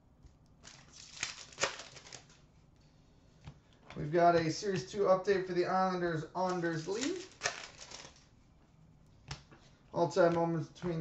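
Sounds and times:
trading cards flipped: 0:00.6 - 0:02.4, 0:06.5 - 0:08.2.

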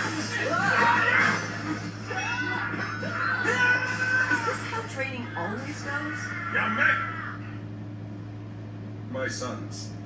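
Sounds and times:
steady low hum: 0:00.0 - 0:10.0
shrill high cry: 0:02.1 - 0:04.8, 0:05.7 - 0:07.5.

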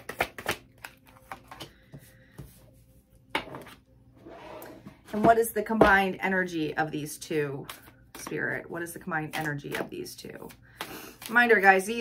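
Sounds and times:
cards being shuffled: 0:00.0 - 0:01.7.

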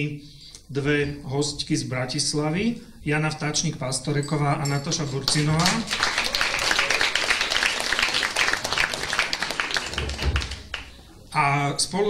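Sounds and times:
audience applause: 0:05.3 - 0:11.0
low thump: 0:10.0 - 0:10.7.

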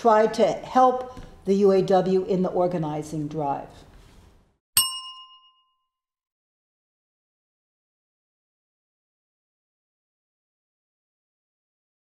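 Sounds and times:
bell-like chime: 0:04.8 - 0:06.0.

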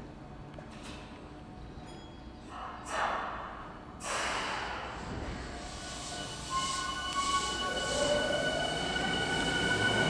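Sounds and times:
train air brakes hissing: 0:04.0 - 0:10.0.

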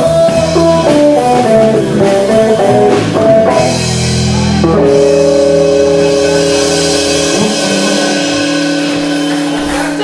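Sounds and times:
bass guitar: 0:00.0 - 0:10.0
electric guitar chord ringing: 0:00.0 - 0:10.0.

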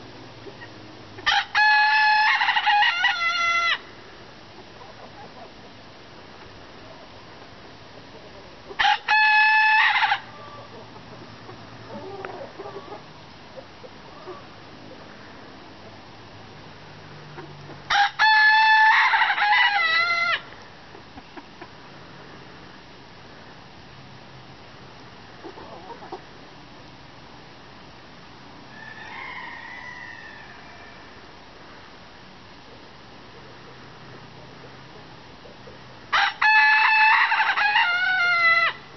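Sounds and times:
faint chicken clucking: 0:00.1 - 0:03.8, 0:04.5 - 0:16.0, 0:17.2 - 0:22.8, 0:25.2 - 0:27.0, 0:28.6 - 0:32.0, 0:32.6 - 0:38.9
long drawn-out chicken call: 0:00.5 - 0:03.9, 0:08.7 - 0:11.0, 0:17.4 - 0:20.6, 0:28.7 - 0:31.5, 0:36.1 - 0:38.9
rooster crowing: 0:01.2 - 0:03.8, 0:08.8 - 0:10.8, 0:17.9 - 0:20.4, 0:28.7 - 0:31.3, 0:36.1 - 0:38.8.

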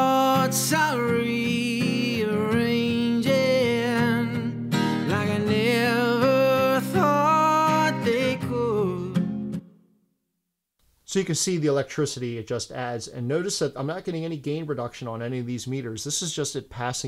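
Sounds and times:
person singing: 0:00.0 - 0:09.5
acoustic guitar strumming: 0:00.0 - 0:09.8.

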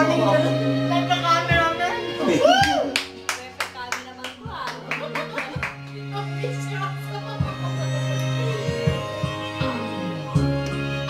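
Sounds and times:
karaoke backing track: 0:00.0 - 0:11.0
hands clapping in rhythm: 0:02.5 - 0:06.1.

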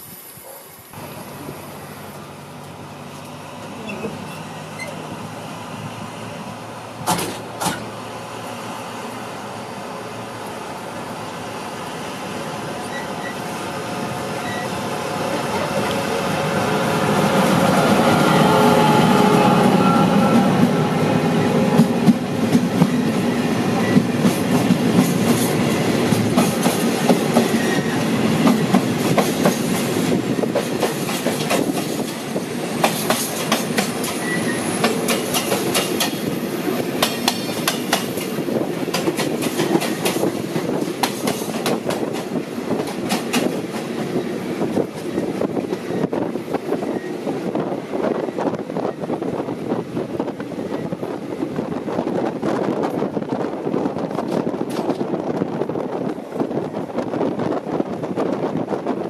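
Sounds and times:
diesel locomotive engine passing: 0:00.9 - 0:59.0
train wheel clicks on rail joints: 0:07.0 - 0:07.9, 0:34.8 - 0:36.2, 0:37.0 - 0:38.2, 0:54.1 - 0:55.2.

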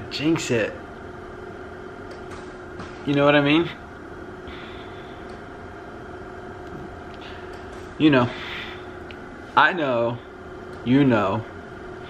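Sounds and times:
steady machine hum: 0:00.0 - 0:12.0.

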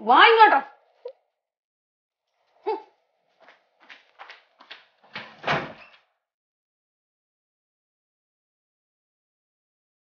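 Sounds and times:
door thudding shut: 0:05.1 - 0:06.0.

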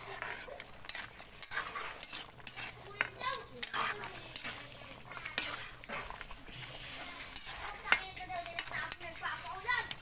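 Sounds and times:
metal ladle scraping a wok: 0:00.0 - 0:10.0.

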